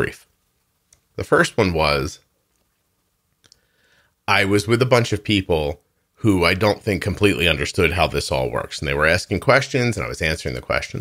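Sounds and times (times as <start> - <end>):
man speaking: 0.0 - 0.3, 1.1 - 2.3, 4.3 - 11.0.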